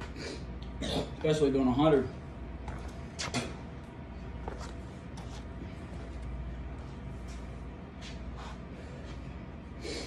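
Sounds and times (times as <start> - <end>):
steady low hum: 0.0 - 10.0
sneaker footsteps on concrete: 4.4 - 9.2.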